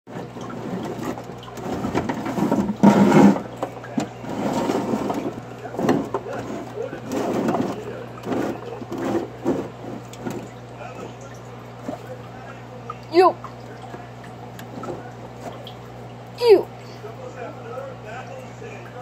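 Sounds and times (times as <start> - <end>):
steady low hum: 0.1 - 19.0.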